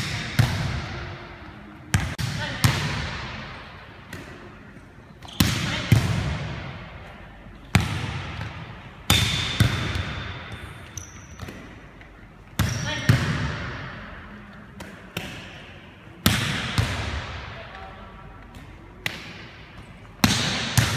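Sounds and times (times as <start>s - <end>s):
volleyball smacks echoing in gym: 0.0s - 20.9s.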